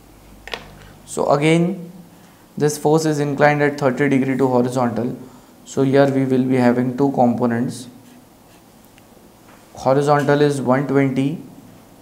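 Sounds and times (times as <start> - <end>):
marker scratching on paper: 7.9 - 8.7.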